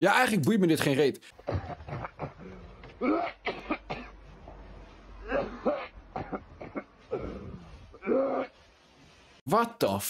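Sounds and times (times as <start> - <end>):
person coughing: 1.4 - 4.2, 5.2 - 7.4.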